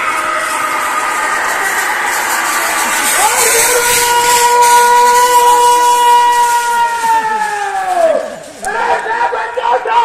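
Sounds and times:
crowd noise hiss: 0:00.0 - 0:10.0.

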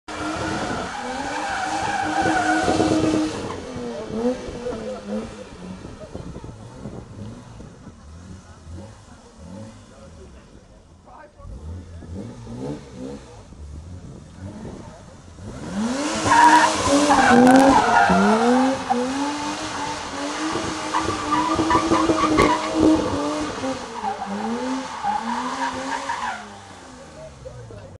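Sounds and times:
tyres squealing on tarmac: 0:00.1 - 0:05.6, 0:16.1 - 0:27.7
car engine revving: 0:00.1 - 0:28.0.

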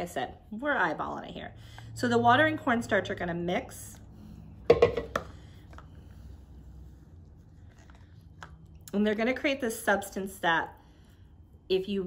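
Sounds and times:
faint handling sounds mixing: 0:03.2 - 0:12.0
plastic pitcher knocking on table: 0:04.7 - 0:05.3.

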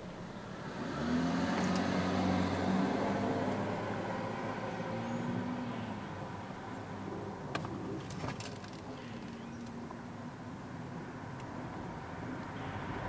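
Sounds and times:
vehicle engine hum: 0:00.0 - 0:13.0.

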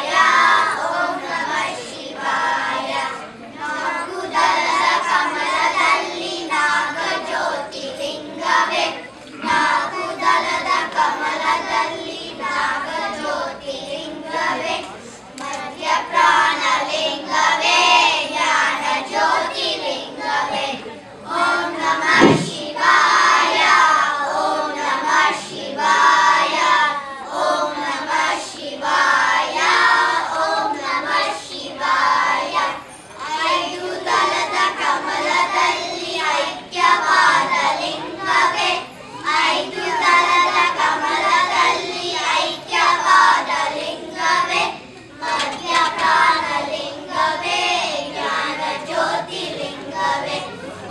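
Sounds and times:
children singing in unison: 0:00.0 - 0:50.9.

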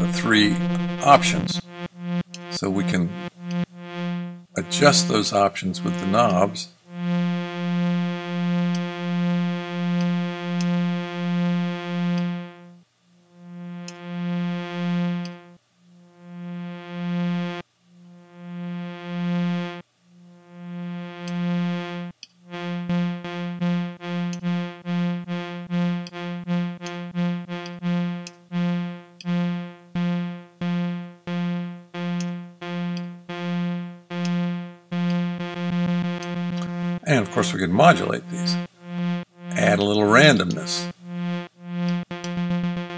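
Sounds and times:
synthesizer pulsing one pitch: 0:00.0 - 0:12.8, 0:13.4 - 0:17.6, 0:18.2 - 0:42.9.

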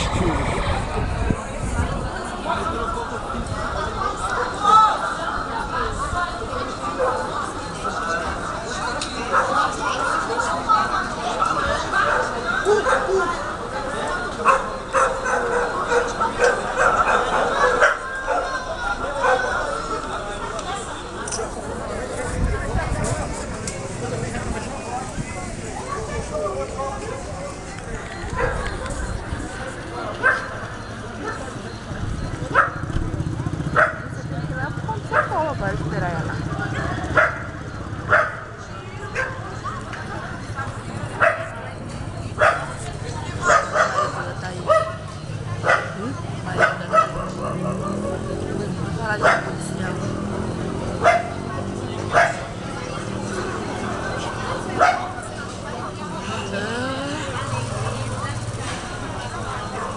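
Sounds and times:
crowd chatter: 0:00.0 - 0:59.9
dog barking: 0:09.3 - 0:09.6, 0:12.0 - 0:13.3, 0:14.4 - 0:18.6, 0:19.2 - 0:19.6, 0:28.4 - 0:28.9, 0:30.2 - 0:30.6, 0:32.5 - 0:32.9, 0:33.7 - 0:34.1, 0:35.1 - 0:35.4, 0:37.1 - 0:38.5, 0:39.2 - 0:39.5, 0:41.2 - 0:41.6, 0:42.4 - 0:42.8, 0:43.4 - 0:48.5, 0:49.2 - 0:49.7, 0:50.9 - 0:51.4, 0:52.1 - 0:52.5, 0:54.8 - 0:55.2.

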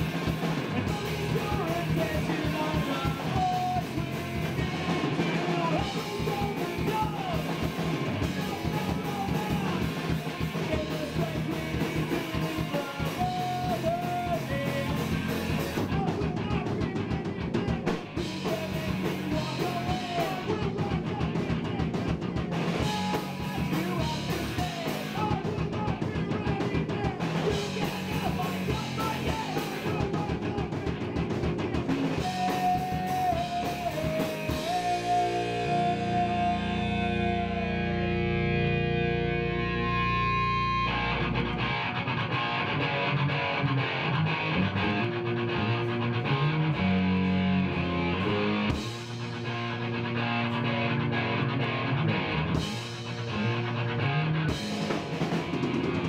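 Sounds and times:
punk rock band playing live: 0:00.0 - 0:56.0.

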